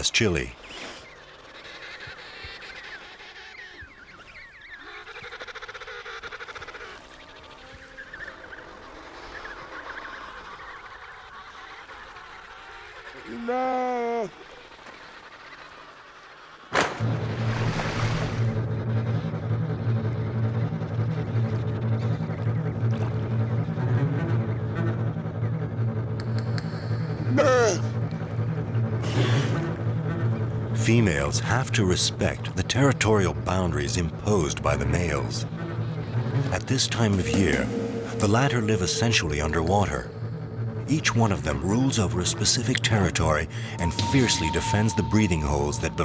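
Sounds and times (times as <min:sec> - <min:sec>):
low musical drone: 0:17.0 - 0:46.0
seal honking call: 0:26.5 - 0:46.0.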